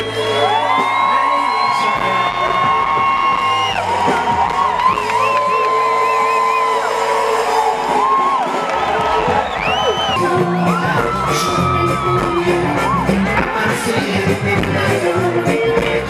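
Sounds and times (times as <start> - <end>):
sustained bass: 0.0 - 8.4, 9.3 - 16.0
crowd whooping and cheering: 0.0 - 16.0
gospel band playing: 0.0 - 16.0.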